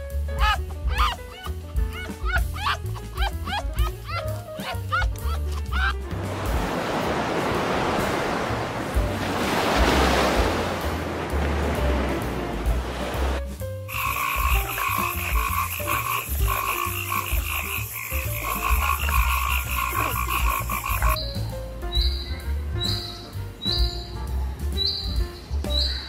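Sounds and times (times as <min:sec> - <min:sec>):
frog high chirps: 0:13.9 - 0:21.3
frogs croaking trill: 0:13.9 - 0:21.3.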